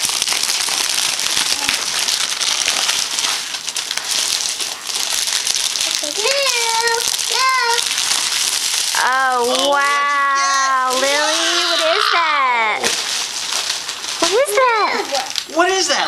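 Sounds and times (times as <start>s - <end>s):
wrapping paper tearing and crinkling: 0.0s - 16.0s.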